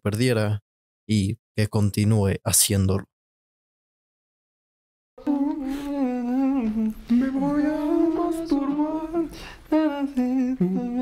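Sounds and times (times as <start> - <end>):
person humming a slow melody: 5.2 - 11.0.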